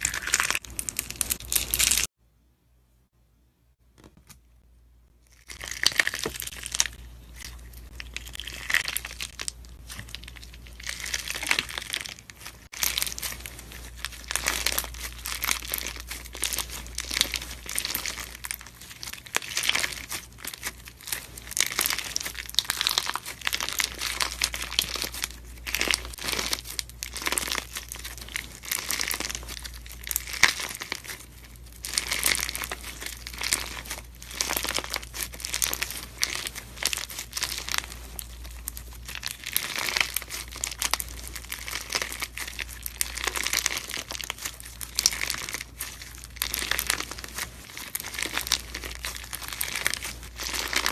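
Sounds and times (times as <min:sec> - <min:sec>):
slime crackling and popping: 0:00.0 - 0:02.1, 0:05.3 - 0:50.9.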